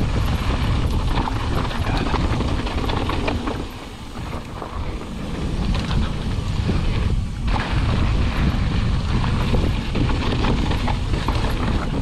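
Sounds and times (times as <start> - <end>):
bike rattling over bumps: 0.0 - 12.0
tyres rumbling on dirt and rock: 0.0 - 12.0
wind on microphone: 0.0 - 12.0.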